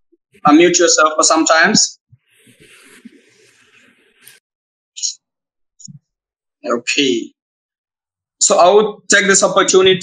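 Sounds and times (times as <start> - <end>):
microphone background noise: 2.1 - 4.4, 9.6 - 10.0.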